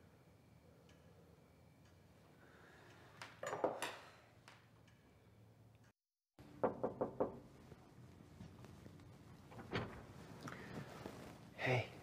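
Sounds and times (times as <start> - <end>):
quick knocks on a door: 6.6 - 7.4.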